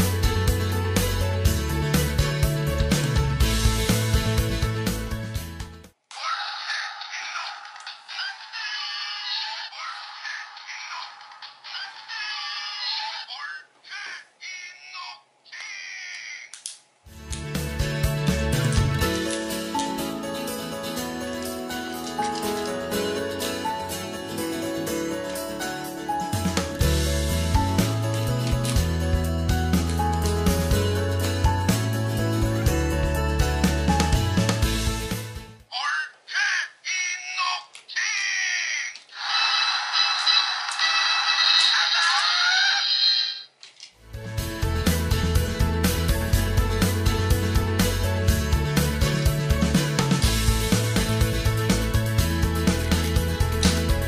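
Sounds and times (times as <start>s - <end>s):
warbling toy voice clips: 6.1s - 16.6s, 35.7s - 43.5s
tinny toy electronic calls: 38.0s - 43.5s.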